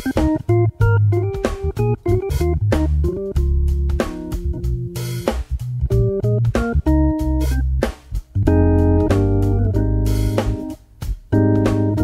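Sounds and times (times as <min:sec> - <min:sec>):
organ bass pedal notes: 0:00.0 - 0:12.0
organ chords: 0:00.0 - 0:12.0.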